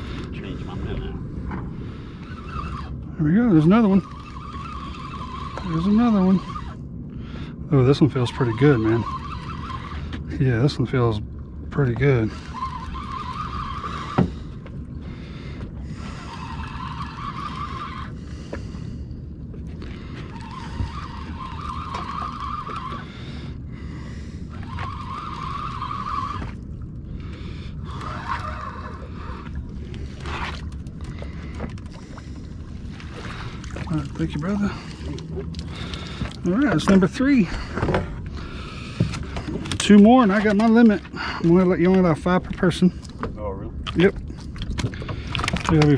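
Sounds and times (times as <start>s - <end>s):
low rumble of wind and water: 0.0s - 45.9s
fishing reel whirring: 2.0s - 6.8s, 8.0s - 10.3s, 12.3s - 14.6s, 16.0s - 18.3s, 19.8s - 23.2s, 24.5s - 26.6s, 27.3s - 29.5s.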